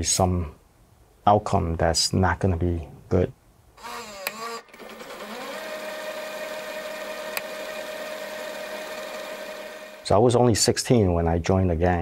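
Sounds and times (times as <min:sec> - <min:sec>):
small motor whirring: 0:03.8 - 0:10.1.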